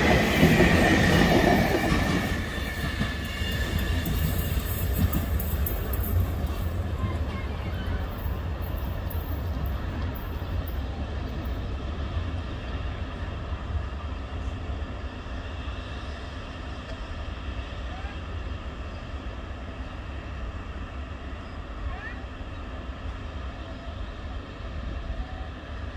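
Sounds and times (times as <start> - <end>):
train rolling rumble: 0.0 - 25.9.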